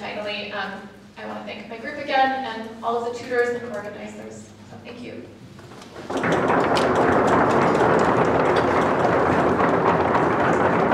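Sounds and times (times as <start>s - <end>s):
audience applauding: 6.0s - 10.9s.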